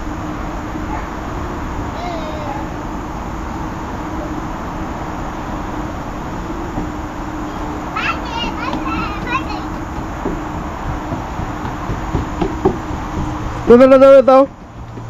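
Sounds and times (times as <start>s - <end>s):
low even hum: 0.0s - 15.0s
outdoor background hiss: 0.0s - 15.0s.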